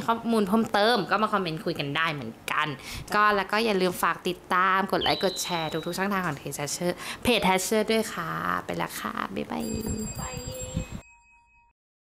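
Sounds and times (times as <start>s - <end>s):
women's voices: 0.0s - 10.9s
bright chime-like ringing: 5.0s - 6.0s, 9.6s - 11.7s.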